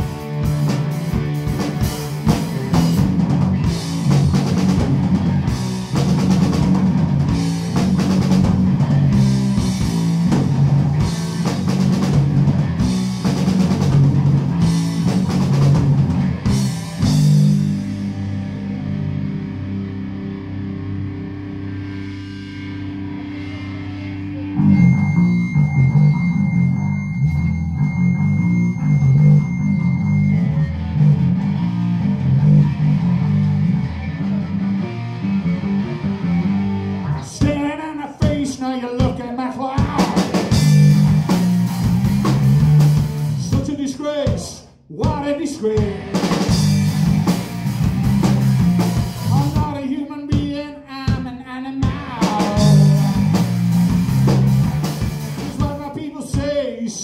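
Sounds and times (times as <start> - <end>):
drum kit: 0.0 - 20.6, 30.8 - 56.7
electric guitar: 0.0 - 44.4, 45.1 - 57.0
bass guitar: 0.0 - 57.0.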